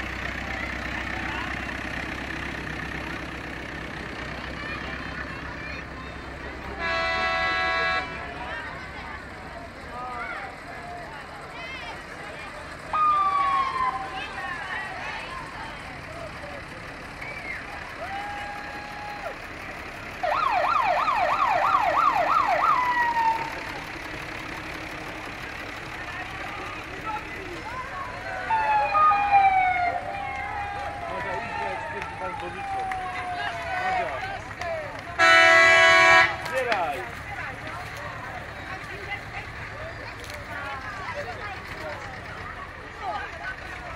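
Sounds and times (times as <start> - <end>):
street crowd chatter: 0.0 - 43.9
siren yelping: 12.9 - 14.2, 20.2 - 23.6, 28.4 - 31.3, 32.0 - 33.8.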